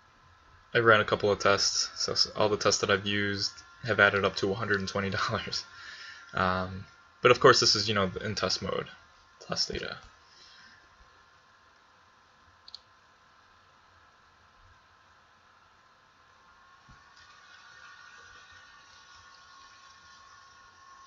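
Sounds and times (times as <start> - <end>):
faint room hiss and hum: 0.0 - 21.0.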